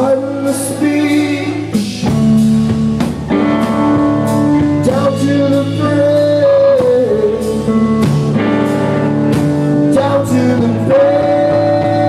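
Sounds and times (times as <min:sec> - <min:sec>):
drums with cymbal hits: 0:00.0 - 0:12.0
electric guitar: 0:00.0 - 0:12.0
man singing long high note: 0:09.9 - 0:12.0.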